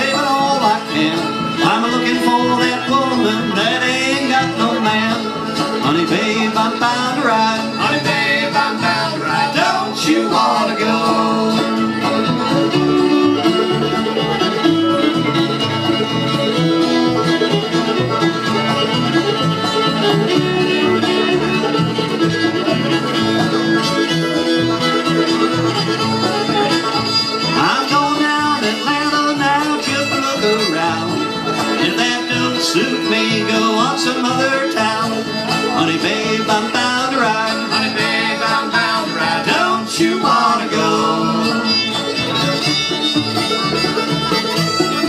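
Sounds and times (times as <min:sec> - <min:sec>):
acoustic guitar: 0:00.0 - 0:45.0
banjo: 0:00.0 - 0:45.0
fiddle: 0:00.0 - 0:45.0
upright bass: 0:00.0 - 0:45.0.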